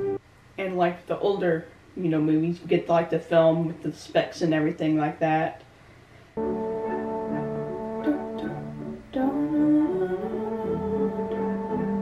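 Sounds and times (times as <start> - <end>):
upbeat instrumental music: 0.0 - 0.2, 6.4 - 12.0.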